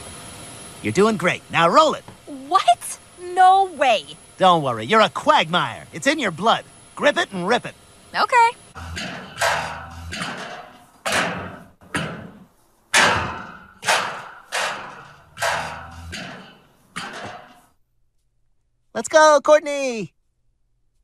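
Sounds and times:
heavy ringing thuds: 8.8 - 17.8.

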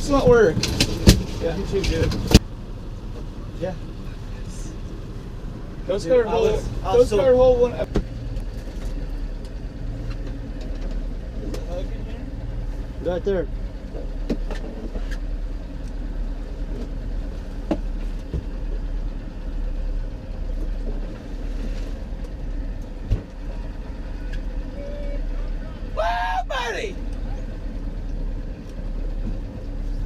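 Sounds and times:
outboard motor running: 0.0 - 26.0, 26.9 - 30.0.

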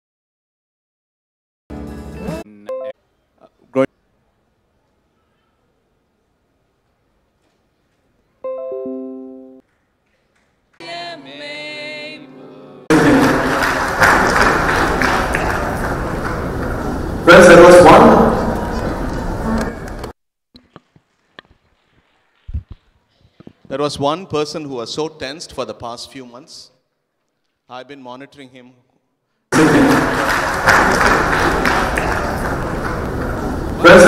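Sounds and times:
crowd noise in a hall: 3.0 - 23.8, 29.5 - 34.0
audience applause: 12.9 - 20.1, 29.6 - 34.0
loud single claps: 13.2 - 16.4, 29.6 - 32.7.

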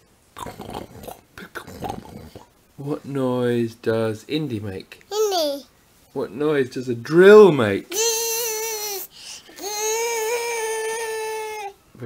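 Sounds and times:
toddler imitating a drill: 7.9 - 11.7.

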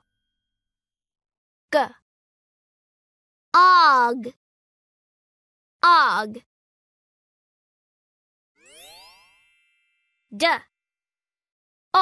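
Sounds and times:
cartoon chime with rising glide: 8.6 - 10.3.

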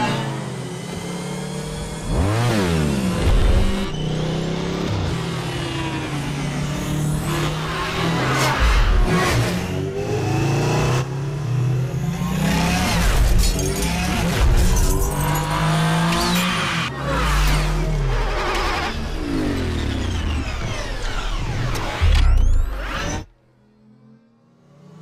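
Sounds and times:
futuristic engine whines: 0.0 - 25.0.

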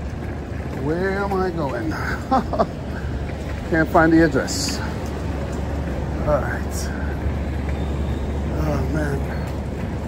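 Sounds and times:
city street rumble: 0.0 - 10.0
man talking: 0.7 - 2.4, 3.6 - 5.0, 6.1 - 7.2, 8.5 - 9.6.

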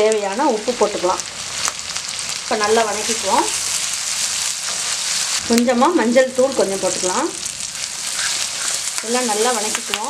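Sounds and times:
shallots frying in hot oil: 0.0 - 10.0.

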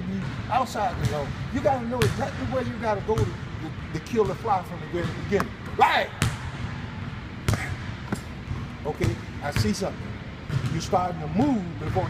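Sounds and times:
punches thudding on punching bag: 7.5 - 8.2.

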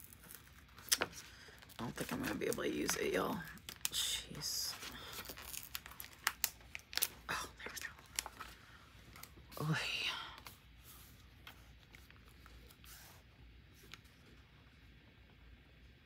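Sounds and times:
paper sticker sheet crinkling: 0.0 - 9.4.

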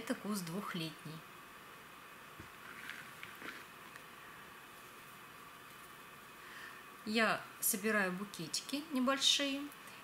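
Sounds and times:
lavender stems rustling: 2.4 - 4.0.

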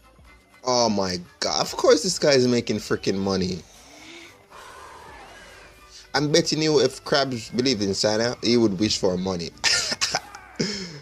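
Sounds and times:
cartoon soundtrack: 2.8 - 6.0.

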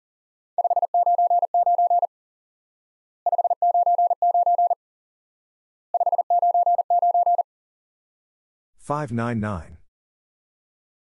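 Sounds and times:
morse code tone: 0.6 - 2.1, 3.3 - 4.8, 6.0 - 7.4.

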